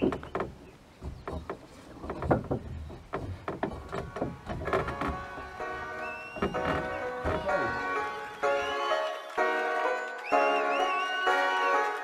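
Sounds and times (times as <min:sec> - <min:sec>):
footsteps on wooden floor: 0:00.0 - 0:08.0
footsteps on wooden ladder: 0:00.0 - 0:08.2.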